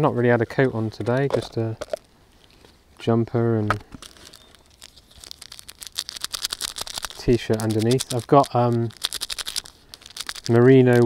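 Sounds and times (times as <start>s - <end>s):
wrapper crinkling and tearing: 3.9s - 11.0s.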